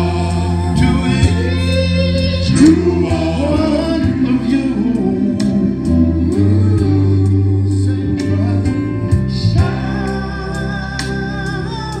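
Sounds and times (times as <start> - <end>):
male vocal group singing: 0.0 - 12.0.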